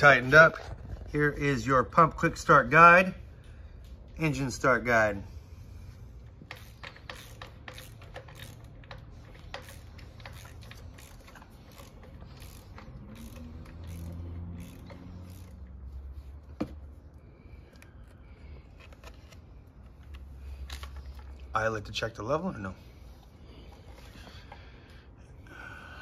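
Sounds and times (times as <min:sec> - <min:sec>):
hand tool clicking and scraping: 0:06.3 - 0:15.8.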